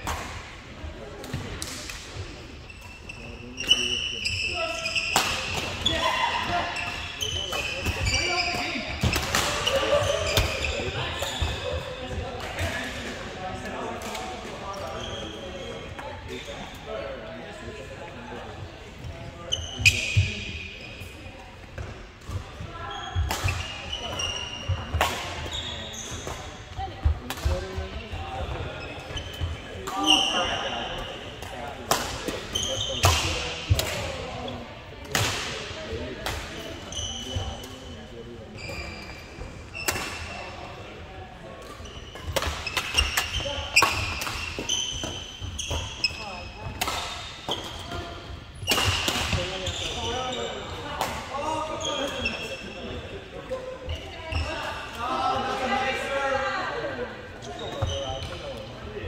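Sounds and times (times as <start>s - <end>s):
players' voices: 0.0s - 59.0s
sneakers squeaking on court: 2.6s - 12.8s, 19.0s - 31.4s, 36.7s - 40.8s, 41.6s - 50.9s, 51.5s - 54.9s, 57.4s - 58.8s.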